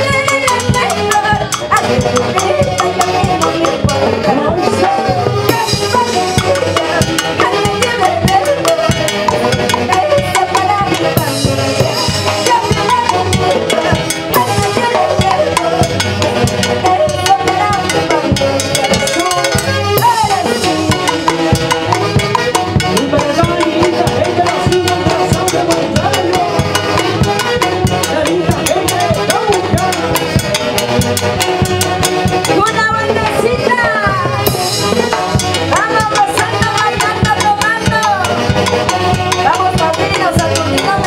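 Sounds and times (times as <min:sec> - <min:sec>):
drums: 0:00.0 - 0:41.0
saxophones and clarinets melody: 0:00.0 - 0:41.0.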